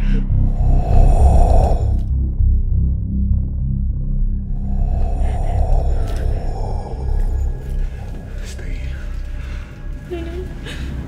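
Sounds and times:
breathy rasping swell: 0:00.0 - 0:02.5, 0:04.2 - 0:11.0
low pulsing bass: 0:00.0 - 0:11.0.

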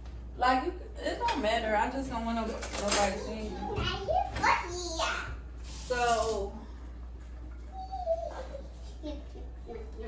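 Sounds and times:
utensils clattering: 0:02.4 - 0:03.7.

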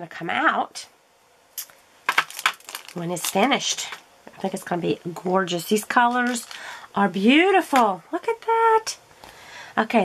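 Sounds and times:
plastic crinkling and clicking: 0:01.6 - 0:04.0.

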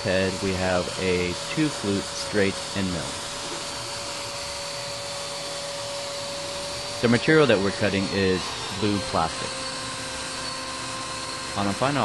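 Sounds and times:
router motor whining: 0:00.0 - 0:12.0.

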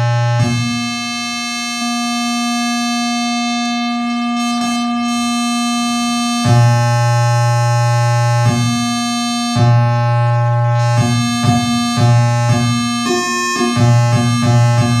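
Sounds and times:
steady electronic tone: 0:12.8 - 0:15.0.

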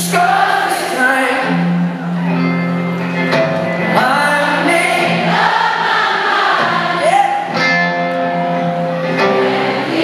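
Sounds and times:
crowd singing along: 0:00.0 - 0:02.3, 0:03.2 - 0:10.0.

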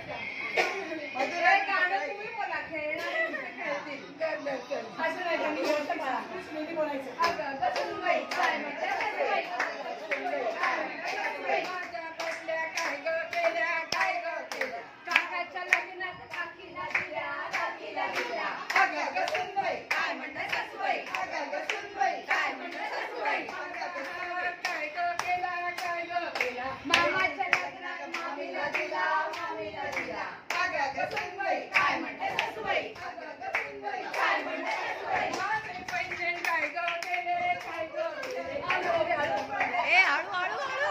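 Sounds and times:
women's voices: 0:00.0 - 0:40.9
rhythmic hand clapping: 0:00.5 - 0:01.4, 0:07.2 - 0:40.9.

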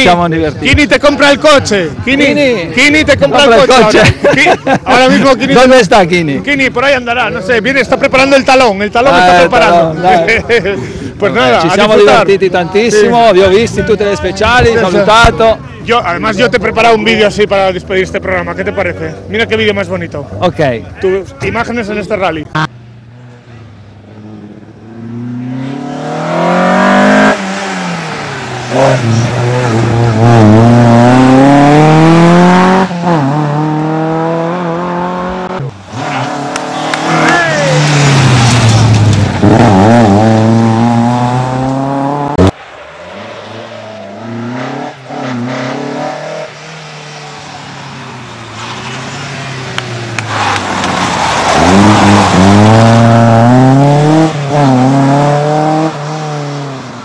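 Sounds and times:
car engine revving through gears: 0:24.0 - 0:57.0.

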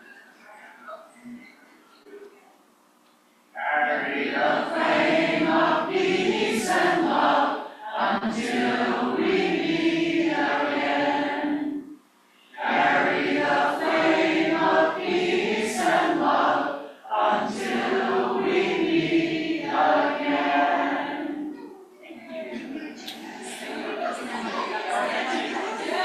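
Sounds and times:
congregation singing: 0:03.6 - 0:26.0.

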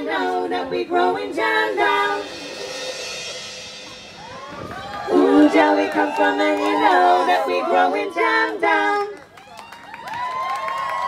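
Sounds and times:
women singing in harmony: 0:00.0 - 0:02.8, 0:05.1 - 0:09.2
crowd whooping and cheering: 0:03.8 - 0:11.0.

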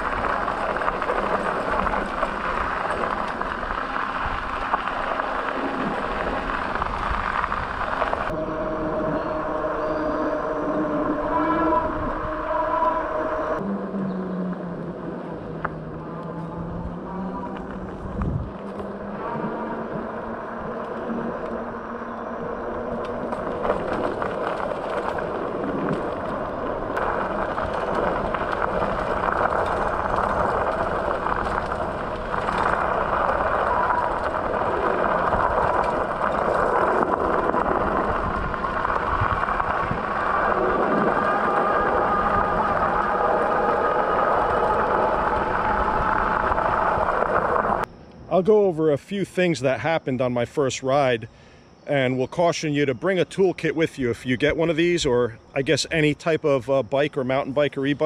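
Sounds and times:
tyres rolling over gravel: 0:00.0 - 0:13.6, 0:14.4 - 0:48.7.

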